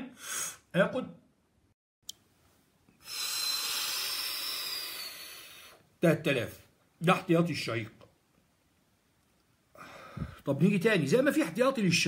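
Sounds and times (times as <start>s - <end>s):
man breathing in deeply: 3.0s - 5.8s, 9.7s - 10.4s.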